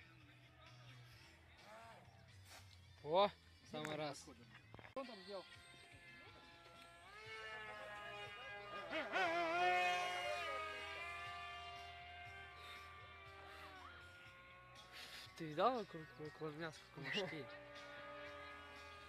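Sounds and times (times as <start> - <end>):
model jet electric motor whine: 6.0 - 19.0.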